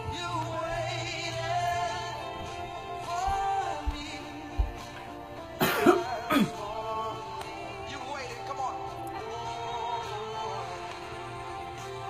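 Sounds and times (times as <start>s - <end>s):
music with singing: 0.0s - 12.0s
person coughing: 5.6s - 6.7s.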